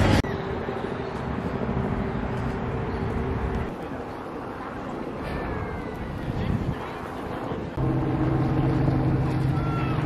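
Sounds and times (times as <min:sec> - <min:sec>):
wind on microphone: 0:04.7 - 0:07.8
boat engine drone: 0:07.0 - 0:10.0.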